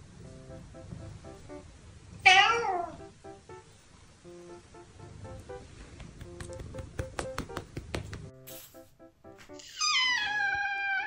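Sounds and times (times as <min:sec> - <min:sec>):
cat meowing: 0:02.2 - 0:03.0, 0:09.6 - 0:11.0.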